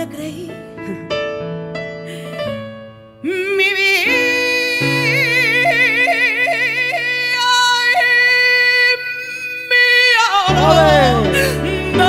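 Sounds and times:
woman singing a long high note: 0:03.2 - 0:12.0
soft instrumental accompaniment: 0:09.0 - 0:12.0.

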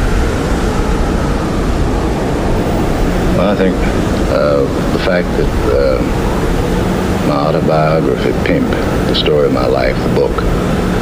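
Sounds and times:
loud rushing noise: 0:00.0 - 0:11.0
man speaking: 0:03.3 - 0:06.2, 0:07.2 - 0:10.5.

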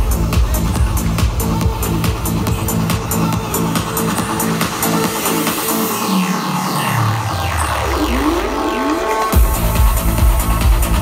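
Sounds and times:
trance music: 0:00.0 - 0:11.0
rising synth sweeps: 0:06.0 - 0:09.4.

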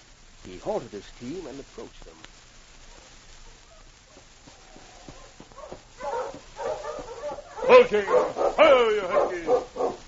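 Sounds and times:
dogs whining and yipping: 0:03.5 - 0:10.0.

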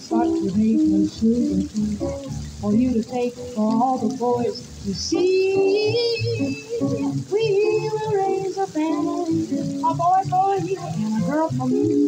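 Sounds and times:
electric guitar: 0:00.0 - 0:12.0
plucked double bass: 0:00.0 - 0:12.0
woman singing: 0:00.0 - 0:12.0.

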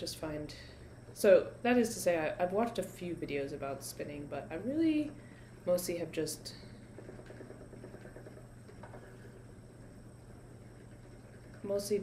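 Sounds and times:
spinning wheel whirring: 0:05.7 - 0:12.0.

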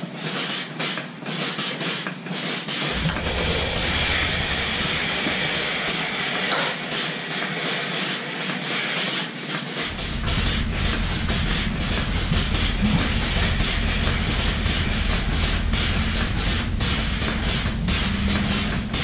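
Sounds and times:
low hum: 0:02.8 - 0:06.9, 0:09.9 - 0:19.0
pulsators clicking: 0:09.9 - 0:19.0.

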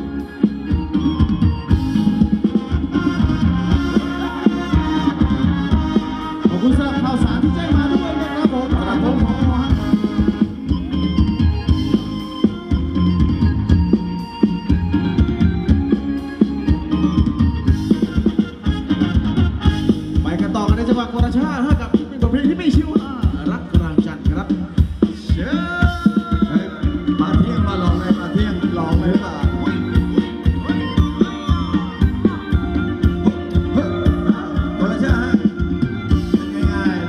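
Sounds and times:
instruments playing melody: 0:00.0 - 0:24.1, 0:25.3 - 0:37.0
live band dance music: 0:00.0 - 0:37.0
loud drum beat: 0:00.0 - 0:37.0.

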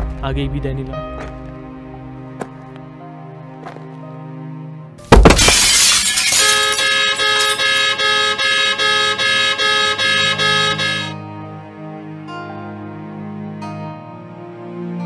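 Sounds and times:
soft background music: 0:00.0 - 0:05.0
crash with shattering glass: 0:05.1 - 0:07.9
car horn blaring: 0:06.1 - 0:11.2.

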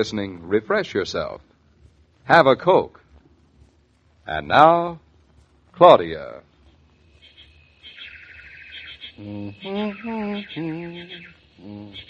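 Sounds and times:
rapid warbling bird trill: 0:07.1 - 0:12.0
bird chirps: 0:07.2 - 0:12.0.

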